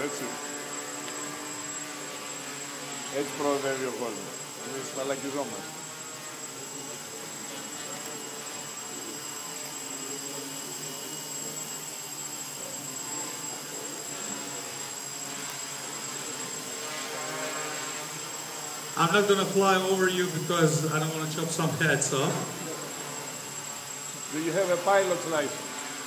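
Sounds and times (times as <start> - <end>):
quadcopter propellers buzzing: 0.0 - 26.0.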